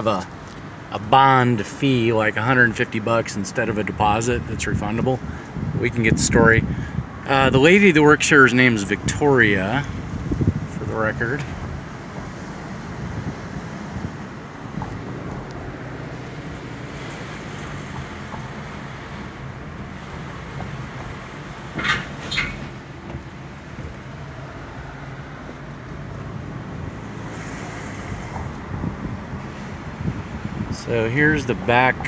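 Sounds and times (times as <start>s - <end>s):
car cabin hum while driving: 8.4s - 32.0s.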